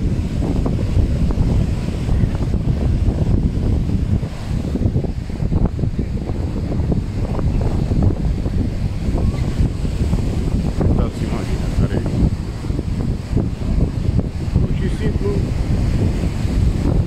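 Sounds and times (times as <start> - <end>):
waves breaking on sandy beach: 0.0 - 17.0
wind buffeting microphone: 0.0 - 17.0.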